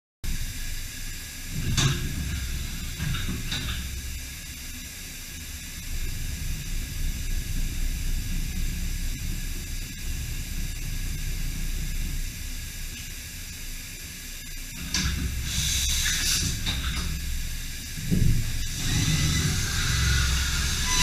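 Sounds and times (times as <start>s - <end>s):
machining centre running: 0.3s - 21.0s.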